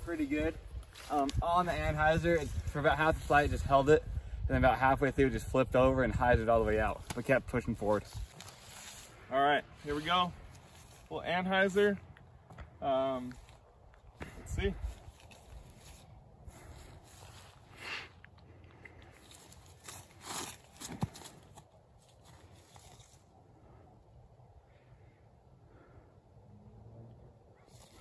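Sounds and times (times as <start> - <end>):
footsteps on grass: 0.2 - 3.4, 6.8 - 23.3
disc throw: 19.5 - 23.2.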